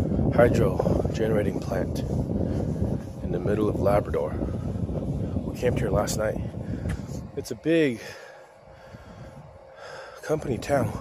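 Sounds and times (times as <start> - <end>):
faint outdoor background noise: 0.0 - 11.0
soft breath into microphone: 1.8 - 3.5, 4.2 - 5.5, 6.4 - 11.0.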